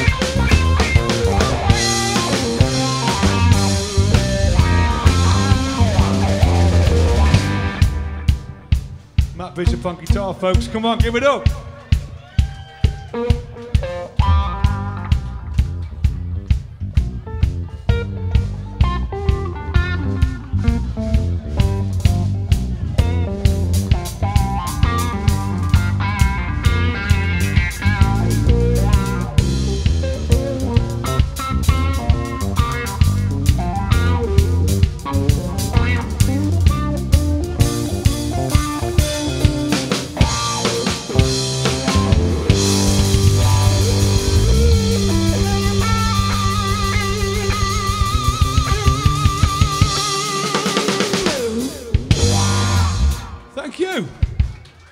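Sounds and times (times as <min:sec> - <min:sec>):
electric guitar lead lines: 0:00.0 - 0:10.2, 0:12.8 - 0:53.6
electric bass: 0:00.0 - 0:11.7, 0:13.3 - 0:53.7
drum kit beat: 0:00.0 - 0:54.9.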